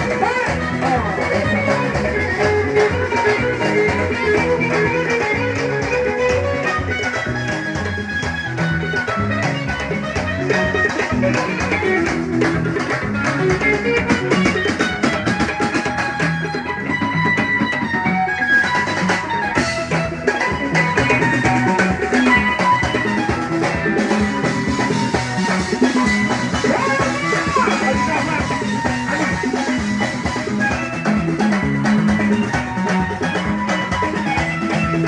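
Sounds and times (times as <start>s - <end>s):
drum kit beating: 0.0s - 35.0s
electric guitar lead line: 0.0s - 35.0s.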